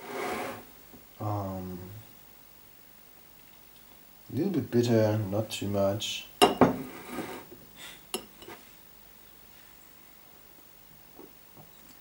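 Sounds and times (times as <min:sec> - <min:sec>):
rustle: 0:00.0 - 0:12.0.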